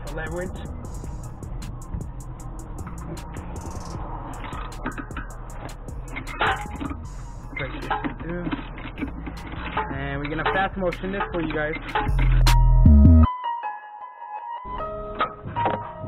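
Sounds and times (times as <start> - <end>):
background music: 0.0 - 16.0.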